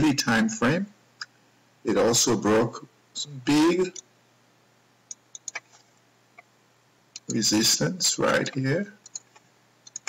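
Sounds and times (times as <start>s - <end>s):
computer mouse clicks: 5.1s - 5.7s, 7.2s - 7.4s, 8.4s - 10.0s.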